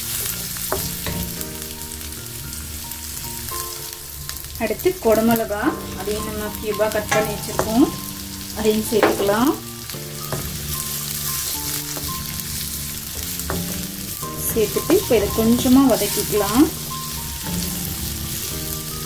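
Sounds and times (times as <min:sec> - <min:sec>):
vegetables sizzling in a wok: 0:00.0 - 0:19.0
wooden spatula scraping wok: 0:04.3 - 0:19.0.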